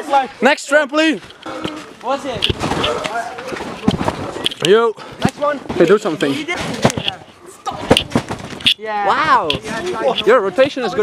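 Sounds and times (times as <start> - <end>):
trampoline mat thudding: 5.3 - 8.6.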